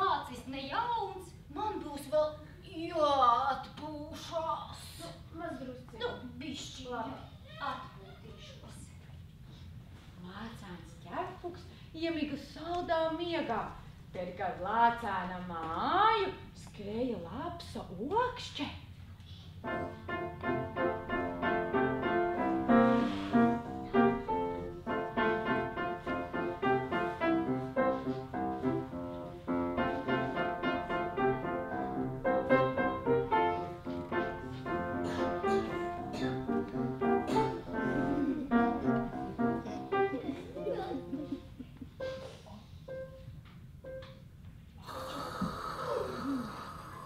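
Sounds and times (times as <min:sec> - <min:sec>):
piano music: 0:19.6 - 0:44.3.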